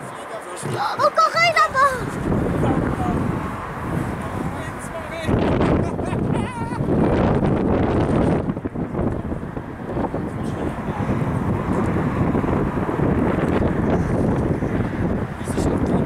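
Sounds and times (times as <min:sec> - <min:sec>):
gusty wind buffeting microphone: 0:00.0 - 0:16.0.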